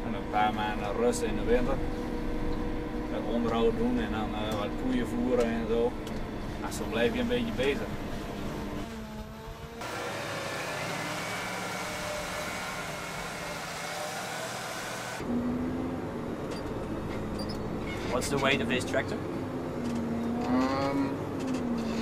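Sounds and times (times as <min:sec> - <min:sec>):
farm machinery engine hum: 0:00.0 - 0:17.9.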